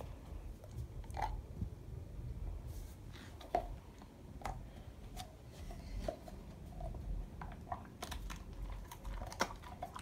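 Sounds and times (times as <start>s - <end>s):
dog chewing hard treat: 5.8s - 10.0s.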